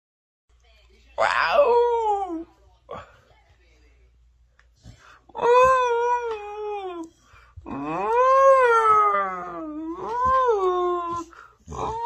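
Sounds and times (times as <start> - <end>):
dog howling: 1.2 - 2.4, 7.7 - 12.0.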